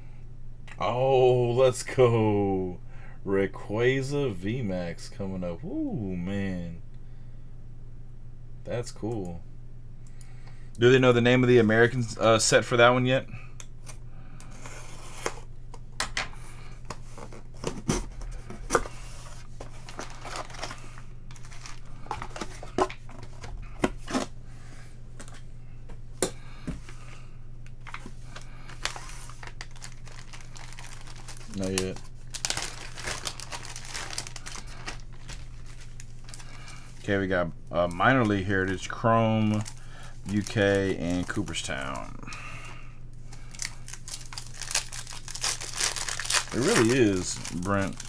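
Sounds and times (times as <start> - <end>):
low steady hum: 0.0 - 48.0
foil packs crinkling: 16.6 - 24.4, 27.8 - 48.0.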